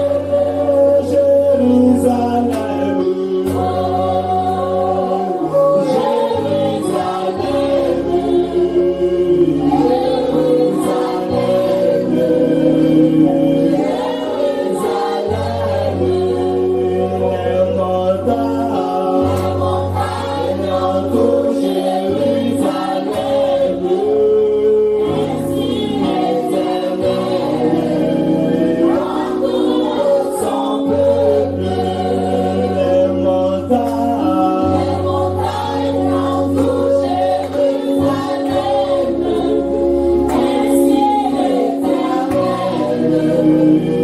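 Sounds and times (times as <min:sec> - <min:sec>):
man singing into a microphone: 0:00.0 - 0:37.8, 0:40.8 - 0:44.0
group singing gospel song: 0:00.0 - 0:44.0.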